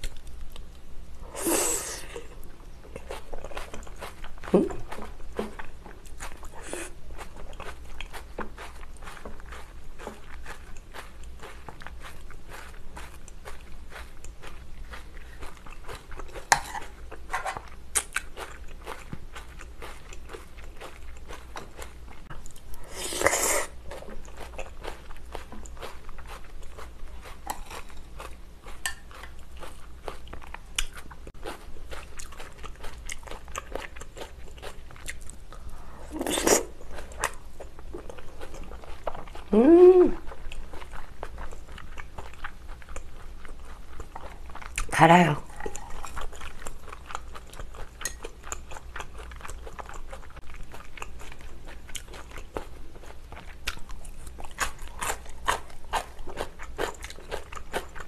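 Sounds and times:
person chewing: 0.0 - 58.0.

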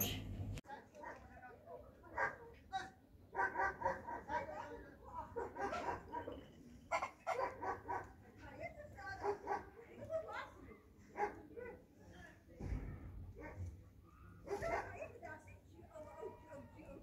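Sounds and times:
voices: 0.0 - 17.0
dog barking and yelping: 3.4 - 4.4, 5.4 - 8.1.

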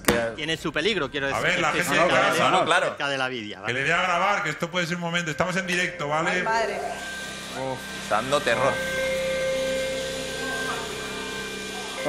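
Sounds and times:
table saw whining: 3.9 - 12.0.

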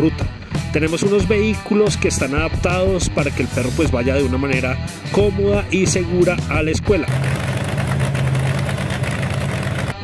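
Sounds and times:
supercharged car engine idling: 7.1 - 10.0.

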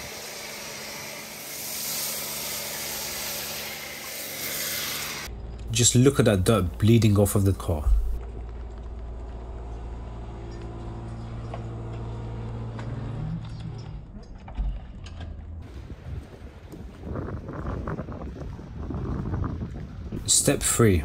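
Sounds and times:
rough noisy sound: 0.0 - 7.0
motor humming: 8.0 - 14.4.

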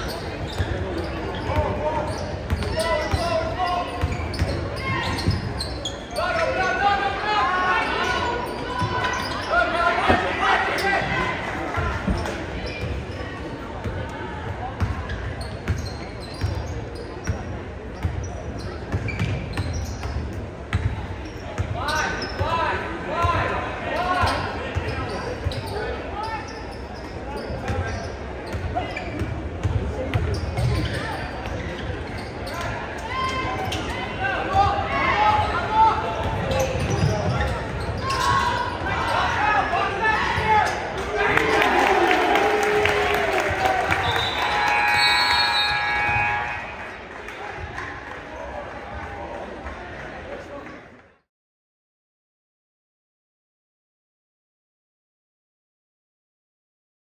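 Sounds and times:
spectators and players shouting: 6.2 - 12.5, 38.0 - 49.4.

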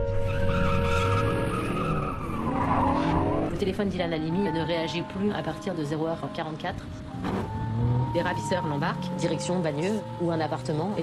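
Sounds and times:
car engine revving: 6.8 - 11.0.

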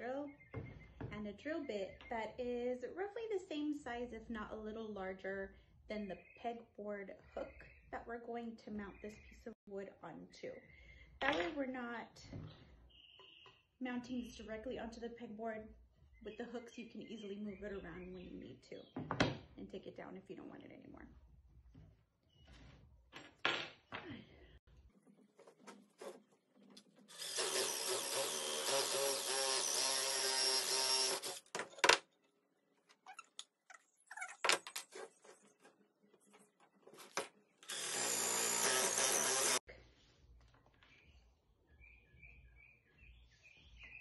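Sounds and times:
cordless drill boring wood: 27.0 - 31.6, 37.6 - 39.7.

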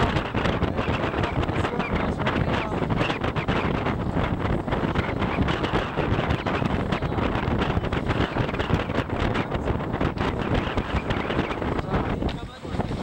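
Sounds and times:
choppy sea water: 0.0 - 13.0
wind buffeting microphone: 0.0 - 13.0.

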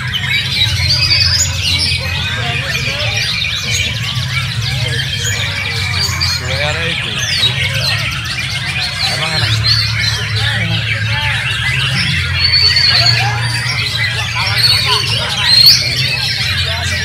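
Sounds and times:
crowd voices: 0.0 - 17.0
other songbirds singing: 0.0 - 17.0.

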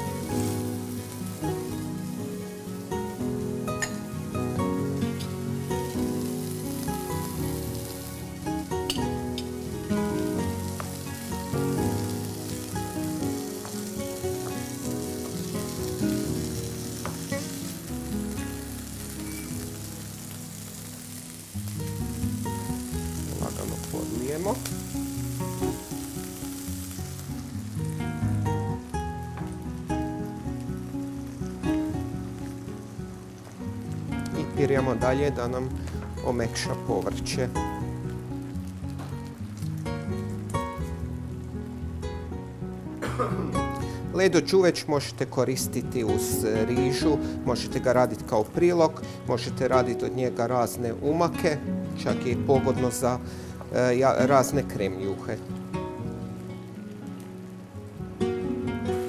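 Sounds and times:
background music: 0.0 - 59.0
vegetables sizzling in oil: 0.0 - 59.0.

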